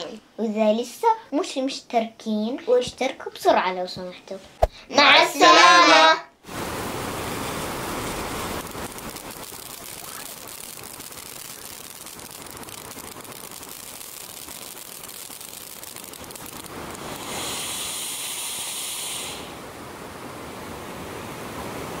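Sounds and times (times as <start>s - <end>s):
fireworks hissing: 4.6s - 19.7s
flowing water rushing: 6.4s - 22.0s.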